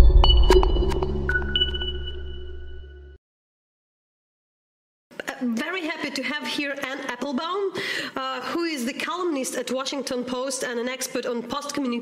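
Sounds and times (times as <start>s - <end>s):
high ringing tones: 0.0s - 3.2s.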